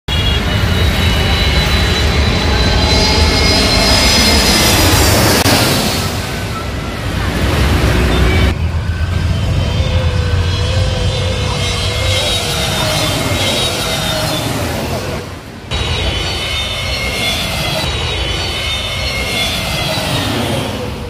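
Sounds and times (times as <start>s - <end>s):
road traffic noise: 0.0s - 21.0s
jet engines whining: 0.1s - 21.0s.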